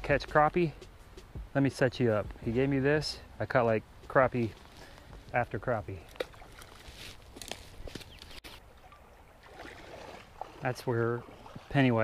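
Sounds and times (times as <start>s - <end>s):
creek-side ambience: 0.0s - 12.0s.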